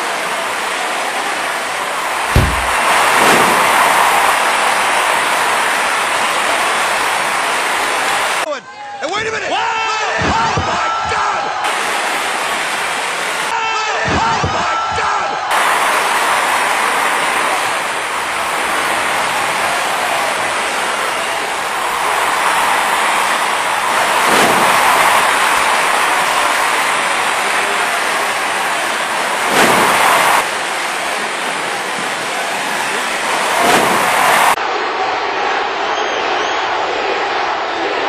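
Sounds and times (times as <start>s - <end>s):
arena crowd roar: 0.0s - 38.0s.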